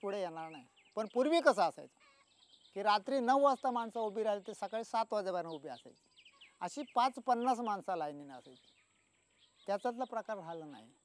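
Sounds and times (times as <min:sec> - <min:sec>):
man speaking: 0:00.0 - 0:01.9, 0:02.8 - 0:06.0, 0:06.6 - 0:08.6, 0:09.7 - 0:11.0.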